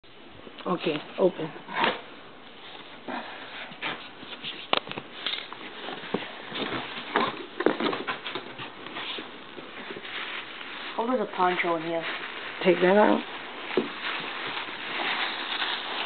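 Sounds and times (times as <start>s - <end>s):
cardboard box rustling: 3.7s - 16.0s
plastic wrapping crinkling: 3.7s - 16.0s.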